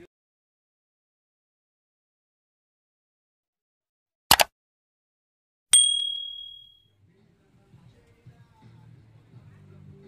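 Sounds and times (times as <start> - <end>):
bell ding ringing: 5.8 - 6.8.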